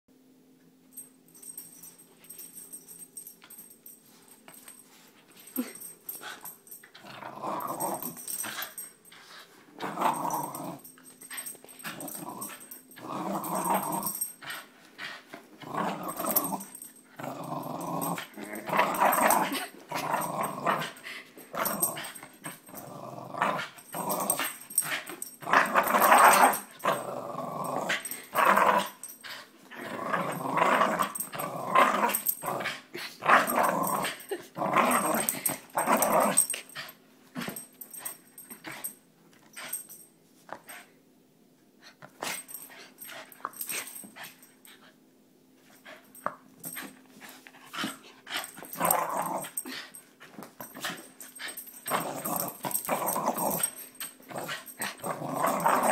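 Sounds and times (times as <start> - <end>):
dog growling playfully: 5.4 - 8.8, 9.7 - 38.9, 47.6 - 50.0, 50.6 - 55.9.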